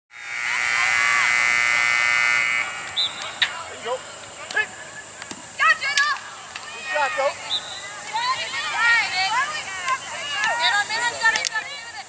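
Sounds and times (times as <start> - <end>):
loud steady buzzing tone: 0.1 - 5.7.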